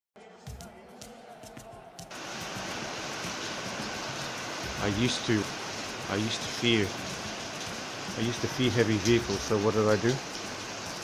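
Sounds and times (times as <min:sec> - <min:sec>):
rain hissing: 0:02.1 - 0:11.0.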